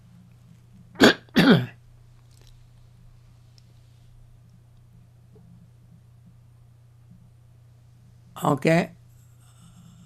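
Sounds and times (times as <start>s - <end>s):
person coughing: 1.0s - 1.8s.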